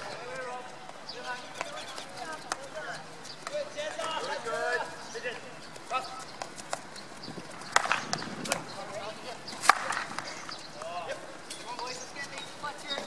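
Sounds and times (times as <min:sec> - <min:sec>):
players shouting: 0:00.0 - 0:06.3
hockey sticks striking balls: 0:00.0 - 0:13.0.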